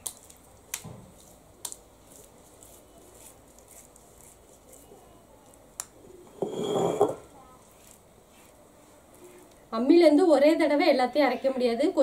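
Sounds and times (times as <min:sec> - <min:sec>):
soft scraping of paste on stone: 0:06.3 - 0:08.9.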